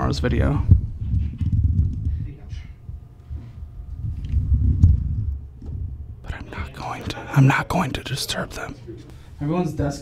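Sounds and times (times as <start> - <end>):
camera handling rumble: 1.0 - 2.2, 3.9 - 5.8.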